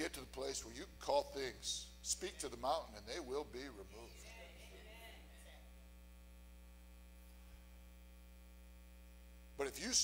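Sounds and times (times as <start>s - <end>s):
low electrical mains hum: 0.0s - 10.0s.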